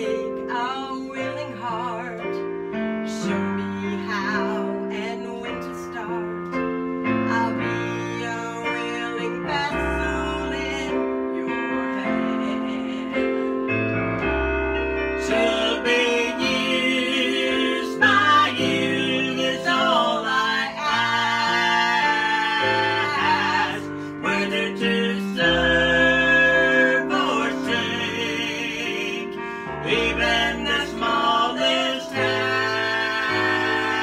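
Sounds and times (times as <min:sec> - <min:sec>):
woman singing gospel: 0:00.0 - 0:02.3, 0:03.1 - 0:06.3, 0:07.3 - 0:13.4, 0:15.3 - 0:34.0
piano accompaniment: 0:00.0 - 0:34.0.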